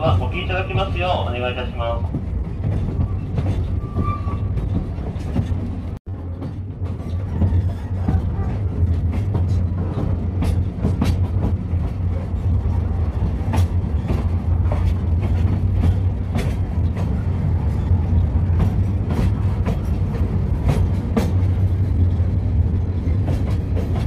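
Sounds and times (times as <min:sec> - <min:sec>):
train low rumble: 0:00.0 - 0:24.0.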